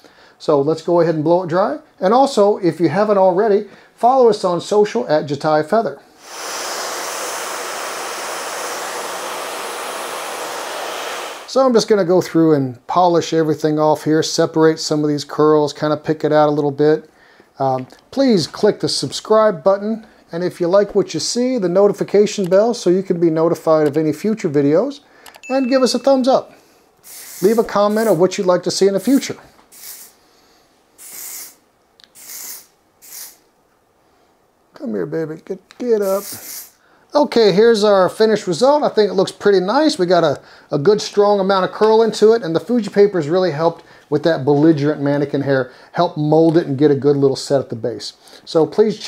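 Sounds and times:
aerosol spray bursts: 6.2s - 11.5s, 27.0s - 28.2s, 29.0s - 30.2s, 31.0s - 33.4s, 36.0s - 36.8s
hair dryer running: 6.2s - 11.5s.

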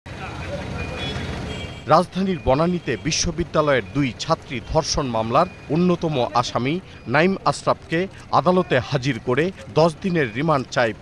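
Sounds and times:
person speaking: 1.9s - 11.0s.

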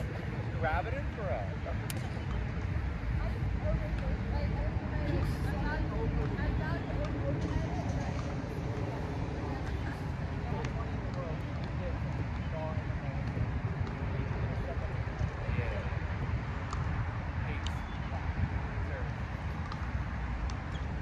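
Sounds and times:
faint indistinct voices: 0.0s - 21.0s.

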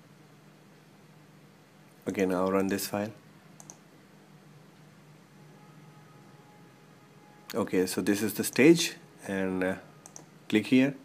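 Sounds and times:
faint room hum: 0.0s - 11.0s
computer mouse button clicks: 10.0s - 10.3s.

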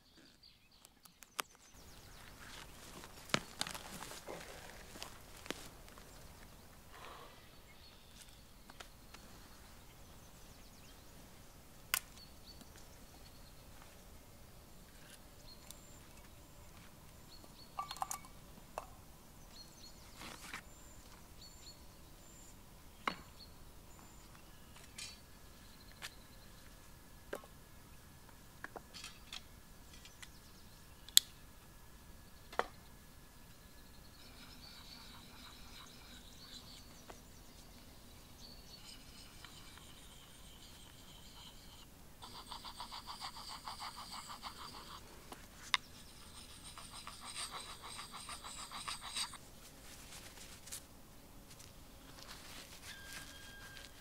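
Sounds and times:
blade rasping on wood: 40.8s - 45.0s, 45.9s - 49.4s.

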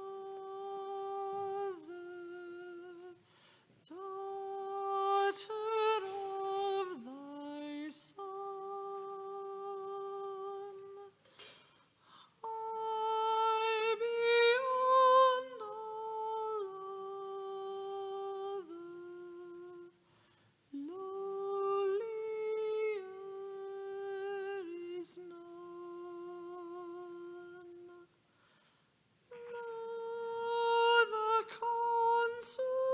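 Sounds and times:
person singing a hymn: 0.0s - 11.4s, 12.2s - 20.0s, 20.7s - 28.1s, 29.3s - 32.9s.

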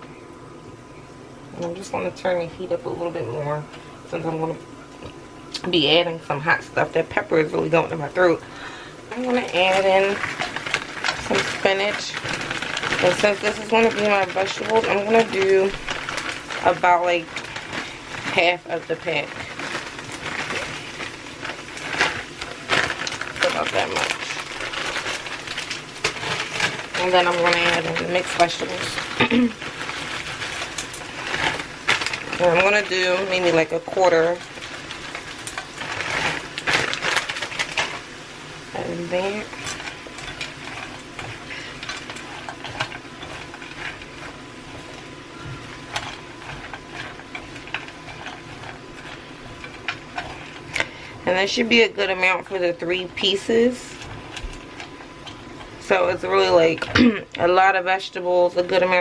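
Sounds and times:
frozen spinach rustling in a pan: 5.4s - 59.0s
spatula scraping a skillet: 38.8s - 51.6s.

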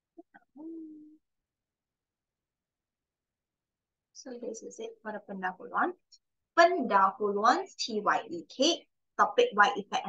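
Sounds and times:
woman humming wordlessly: 0.2s - 1.2s.

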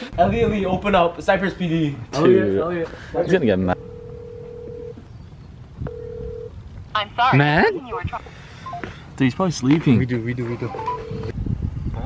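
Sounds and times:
phone call tone beep: 3.8s - 5.0s, 5.9s - 6.5s, 8.6s - 8.9s, 10.7s - 11.3s.

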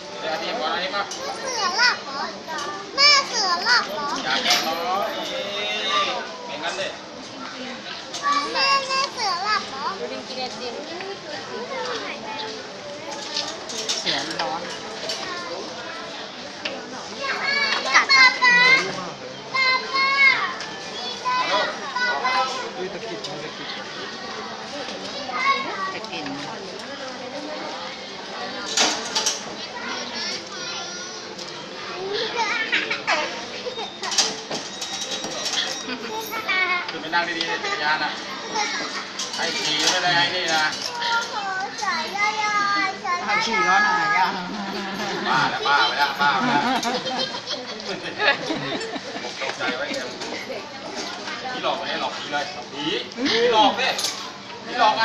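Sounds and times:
children shouting and squealing: 1.1s - 6.5s, 7.9s - 10.0s, 17.1s - 22.8s, 29.5s - 36.9s, 37.7s - 39.8s.

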